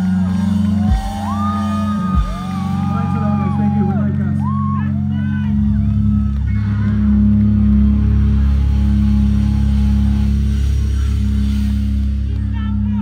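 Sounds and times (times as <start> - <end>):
faint crowd voices: 0.0 - 13.0
live band low drone: 0.0 - 13.0.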